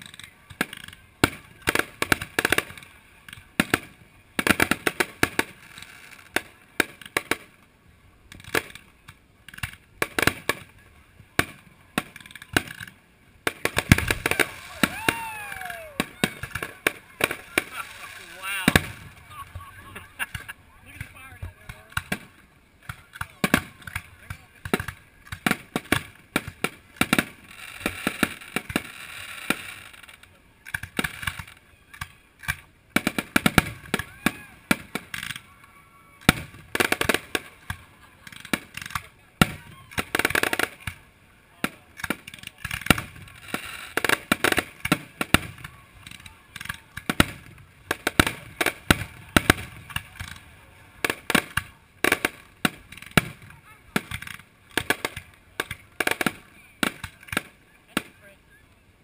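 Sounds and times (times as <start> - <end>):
firework fountains hissing: 0.0 - 58.6
firework shells bursting: 11.4 - 35.4.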